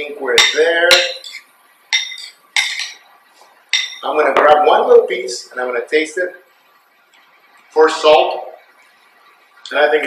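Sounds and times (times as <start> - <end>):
metal spoon clinking ceramic bowl: 0.4 - 3.0, 3.7 - 4.0.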